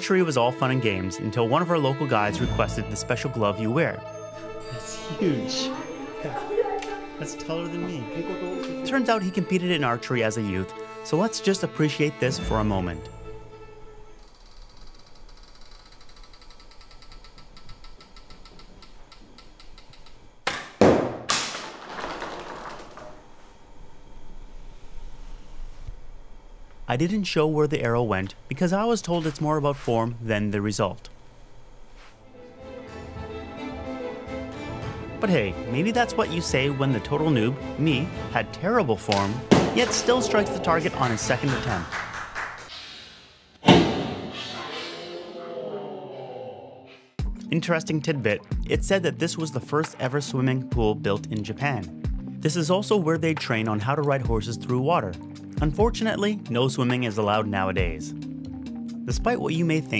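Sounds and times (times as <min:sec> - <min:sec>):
arrow striking target: 0:39.1 - 0:40.1, 0:43.6 - 0:44.6.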